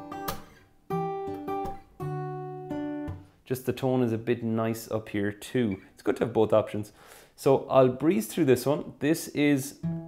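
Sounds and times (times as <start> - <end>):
acoustic guitar fingerpicked: 0.0 - 3.4, 9.3 - 10.0.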